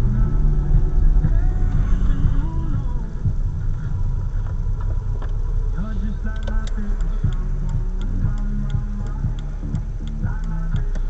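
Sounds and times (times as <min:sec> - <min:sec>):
car running hum: 0:00.0 - 0:11.0
music with singing from car radio: 0:00.0 - 0:11.0
turn signal ticking: 0:00.0 - 0:11.0.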